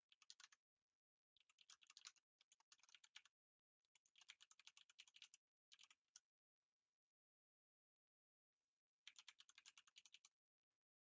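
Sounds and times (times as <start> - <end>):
faint typing on keyboard: 0.0 - 6.3, 9.0 - 10.5.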